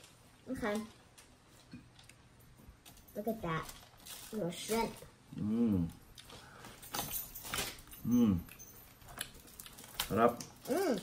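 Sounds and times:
chewing and peeling shells: 0:07.4 - 0:11.0.

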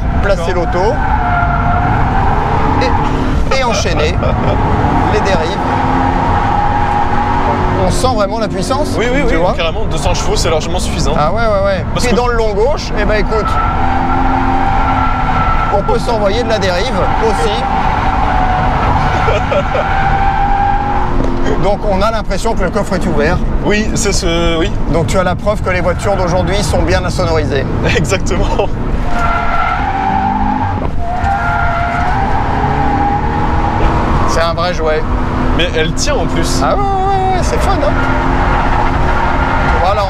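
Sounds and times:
car engine at high revs: 0:00.0 - 0:40.0
tyres squealing: 0:11.9 - 0:22.0, 0:29.0 - 0:40.0.

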